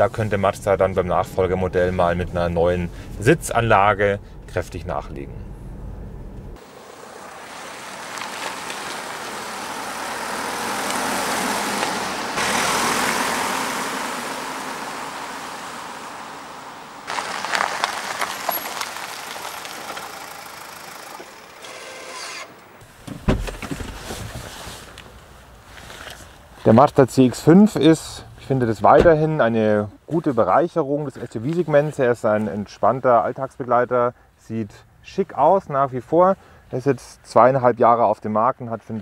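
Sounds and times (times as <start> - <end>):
car driving by: 5.2 - 23.0.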